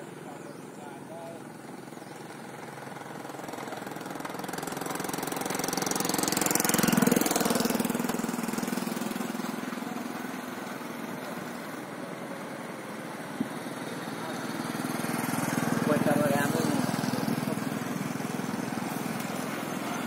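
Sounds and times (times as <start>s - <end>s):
vehicle engine passing by: 0.0s - 20.0s.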